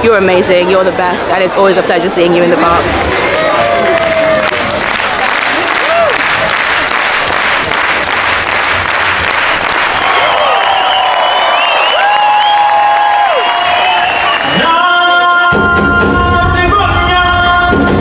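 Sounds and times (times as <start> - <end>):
crowd cheering and whooping: 2.9 - 15.2
audience clapping: 3.0 - 15.5.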